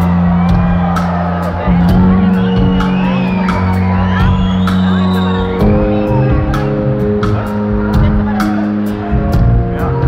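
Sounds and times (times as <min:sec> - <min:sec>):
live band playing: 0:00.0 - 0:10.0
steady drum beat: 0:00.0 - 0:10.0.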